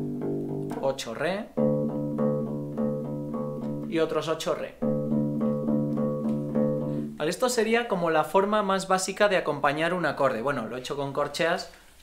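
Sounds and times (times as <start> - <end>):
electric bass plucking: 0.0 - 7.2.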